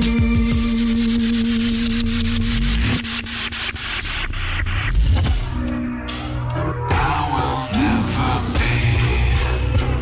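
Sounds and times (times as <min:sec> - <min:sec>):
electronic industrial music: 0:00.0 - 0:10.0.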